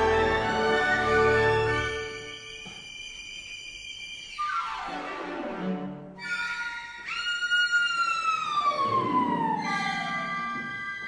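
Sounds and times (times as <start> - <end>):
low sustained orchestral notes: 0.0 - 2.8
orchestral pitch glide: 4.3 - 11.0.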